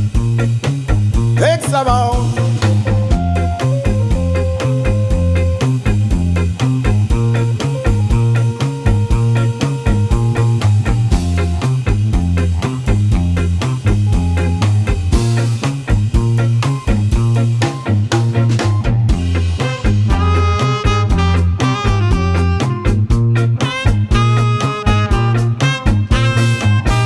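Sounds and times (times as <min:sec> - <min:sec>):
reggae band playing: 0:00.0 - 0:27.0.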